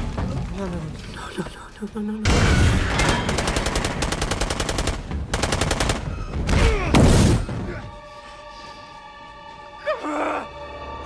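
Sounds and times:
automatic gunfire: 2.9s - 6.1s.

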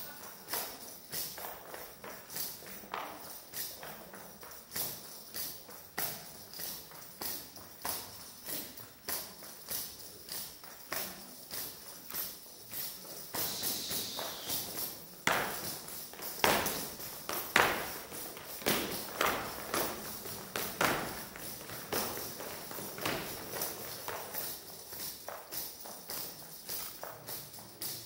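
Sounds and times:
boots stamping on wooden floor: 15.3s - 24.3s.

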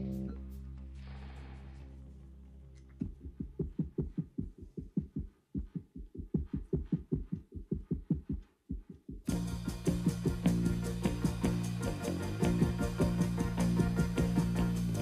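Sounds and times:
muffled bass pulsing beat: 3.0s - 15.0s.

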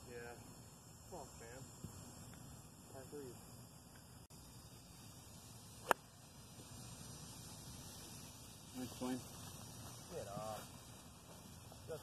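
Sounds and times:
golf club striking ball: 5.8s - 6.2s.

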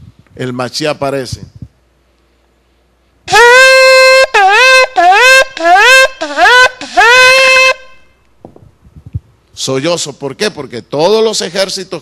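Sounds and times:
shofar blast: 3.3s - 8.2s.

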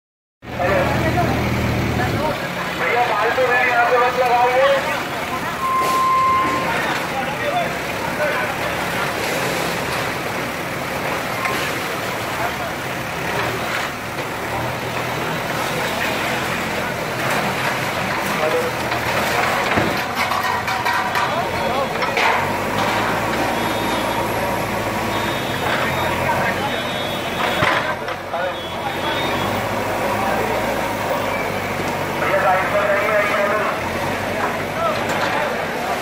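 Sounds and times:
crowd voices: 0.4s - 36.0s
diesel engine running: 0.4s - 36.0s
street noise: 0.4s - 36.0s
short steady high tone: 5.6s - 6.8s.

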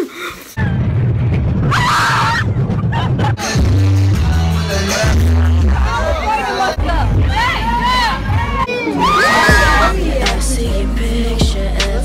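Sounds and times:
long high screams: 1.7s - 2.5s, 7.6s - 9.9s
teenagers shouting and cheering: 5.6s - 10.6s.

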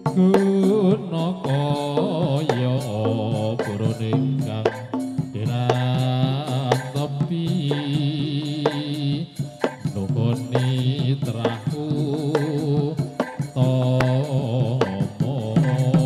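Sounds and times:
drum strokes: 0.0s - 16.0s.

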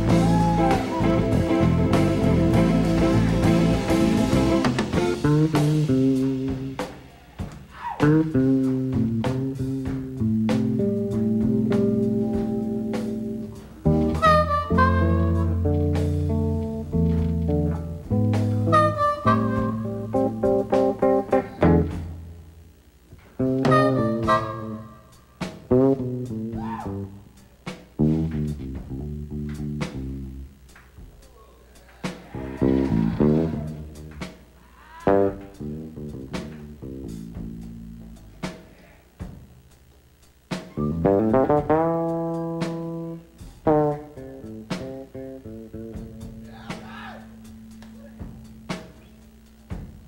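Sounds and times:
electric blues band playing: 0.0s - 50.0s.

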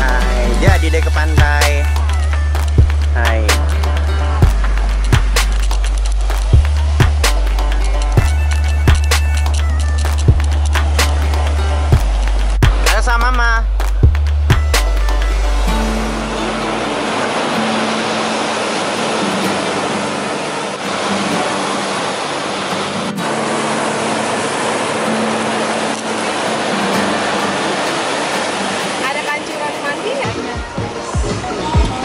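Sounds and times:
ocean surf breaking: 0.0s - 32.0s.

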